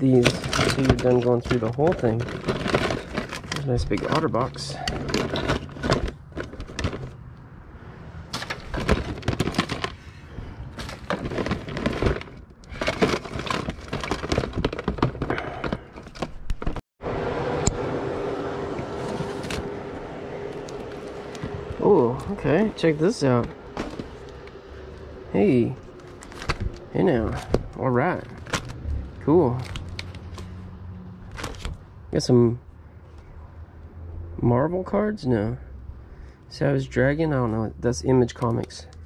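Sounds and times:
cables rattling in plastic tote: 0.0 - 7.2, 8.3 - 16.8, 20.4 - 24.7, 25.3 - 30.5, 31.3 - 31.8.

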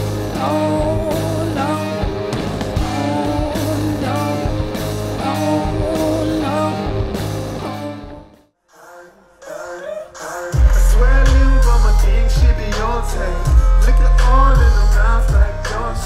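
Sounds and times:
psychedelic rock band playing: 0.0 - 8.4
person singing: 0.0 - 16.0.

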